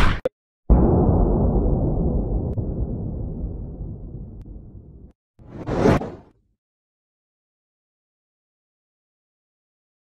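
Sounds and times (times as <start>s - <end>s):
whoosh: 5.4s - 6.3s.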